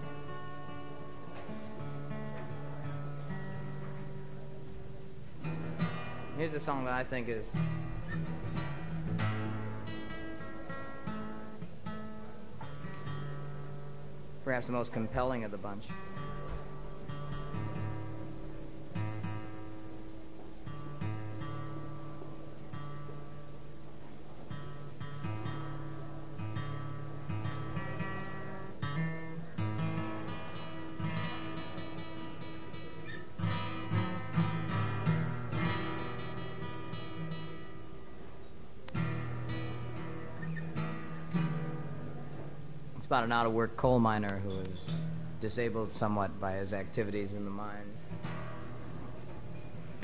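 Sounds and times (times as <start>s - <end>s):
acoustic guitar strumming: 0.0s - 50.0s.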